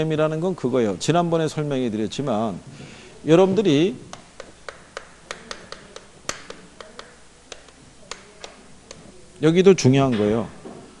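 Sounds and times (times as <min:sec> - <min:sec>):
chalk tapping on blackboard: 0:04.1 - 0:09.1.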